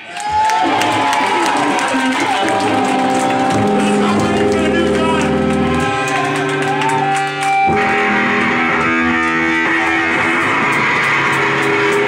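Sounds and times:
electric guitar sustained notes: 0:00.6 - 0:12.0
live rock band playing: 0:01.1 - 0:12.0.

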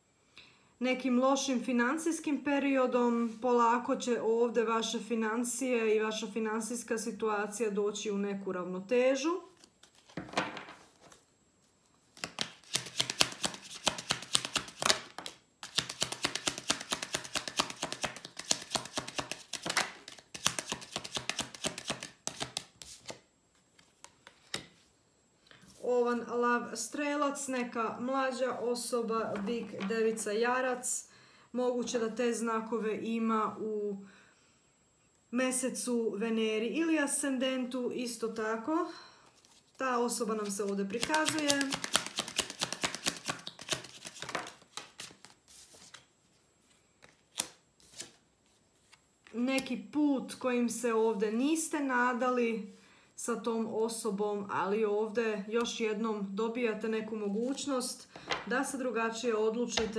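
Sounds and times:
cards being shuffled: 0:09.6 - 0:11.2, 0:12.1 - 0:24.8, 0:40.4 - 0:49.7.

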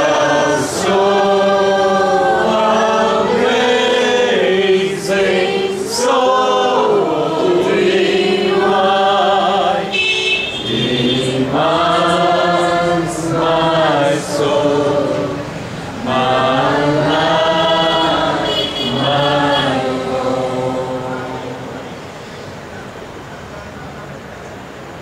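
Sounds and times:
group singing worship song: 0:00.0 - 0:22.4.

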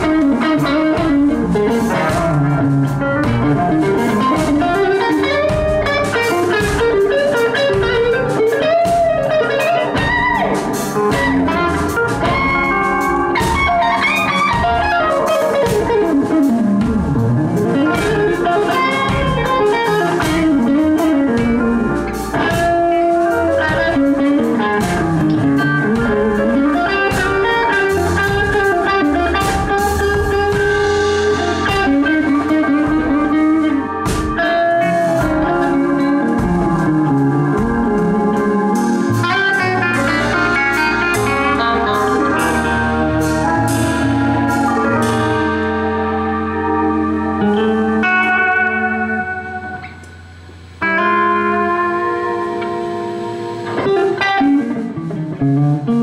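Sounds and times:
drum kit cymbal and snare: 0:00.0 - 0:56.0
electric bass: 0:00.0 - 0:56.0
gliding electric guitar: 0:00.0 - 0:56.0.

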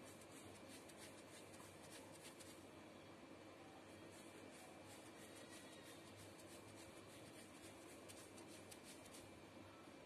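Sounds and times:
damp sponge rubbing on paper: 0:00.0 - 0:02.6, 0:04.0 - 0:09.3.

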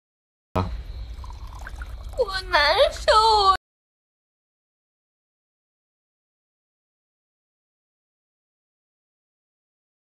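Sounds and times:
liquid pouring into ceramic cup: 0:01.0 - 0:02.2.

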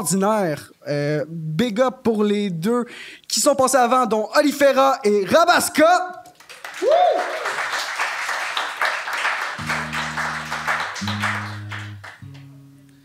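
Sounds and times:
audience applause: 0:06.4 - 0:12.4
acoustic guitar notes plucked: 0:09.6 - 0:13.0.

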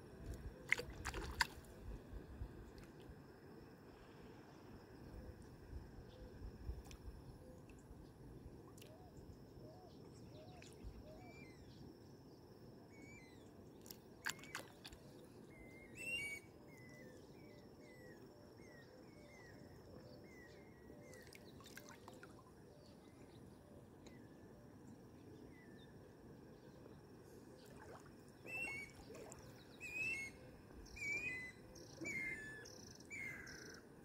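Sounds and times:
low steady hiss: 0:00.0 - 0:34.0
bird calling: 0:28.4 - 0:33.8.

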